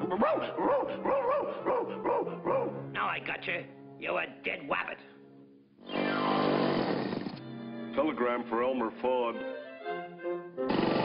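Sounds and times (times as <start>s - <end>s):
faint orchestral music: 0.0s - 6.0s, 7.3s - 11.0s
cartoon motorcycle engine buzzing: 5.9s - 7.4s, 10.7s - 11.0s.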